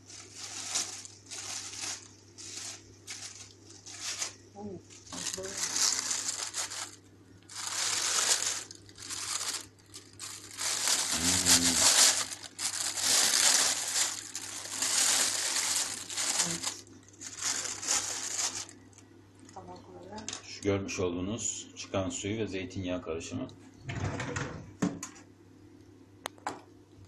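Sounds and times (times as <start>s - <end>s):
plastic bag crinkling: 0.0s - 19.6s.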